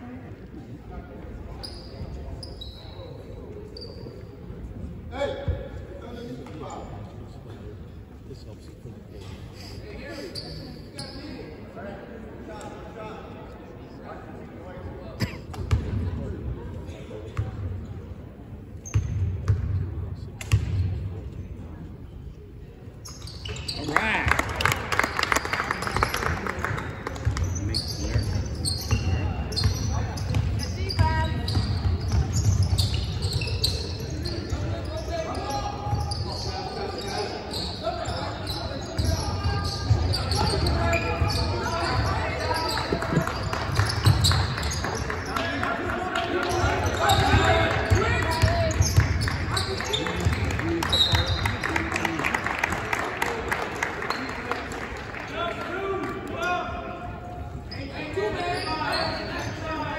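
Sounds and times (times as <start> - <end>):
crowd chatter echoing: 0.0 - 59.9.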